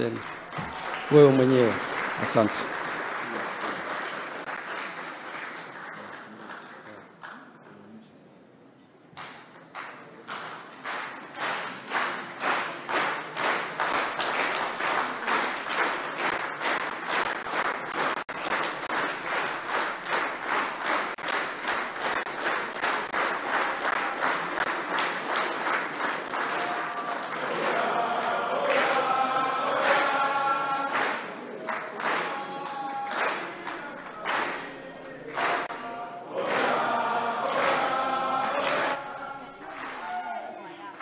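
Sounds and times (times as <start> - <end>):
audience clapping in unison: 0.0 - 7.8, 9.2 - 41.0
crowd singing: 26.4 - 40.5.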